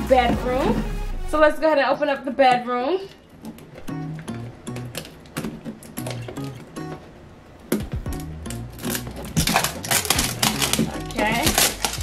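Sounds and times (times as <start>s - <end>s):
background music with bass line: 0.0s - 1.6s, 7.7s - 12.0s
cellophane and cardboard crackling: 8.7s - 12.0s.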